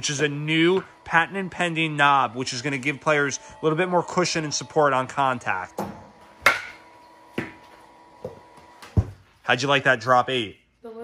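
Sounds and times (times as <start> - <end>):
bat cracking against baseball: 6.3 - 7.7.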